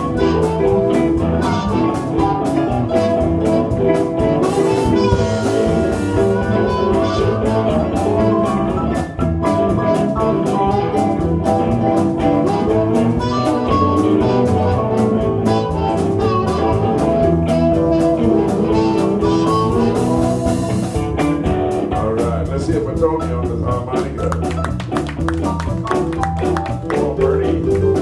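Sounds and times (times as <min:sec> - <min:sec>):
harmonica: 0:00.0 - 0:21.0
bass: 0:00.0 - 0:28.0
drums and cymbals: 0:00.0 - 0:28.0
electric guitars: 0:00.0 - 0:28.0
keyboard: 0:00.0 - 0:28.0.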